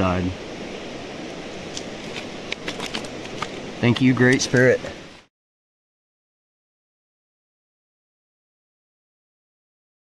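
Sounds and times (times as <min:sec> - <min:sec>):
man speaking: 0:00.0 - 0:00.4, 0:03.8 - 0:05.0
creek water running: 0:00.0 - 0:05.3.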